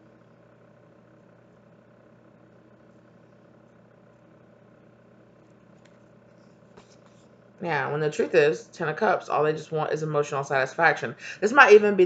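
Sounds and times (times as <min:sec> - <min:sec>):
faint room hum: 0:00.0 - 0:12.0.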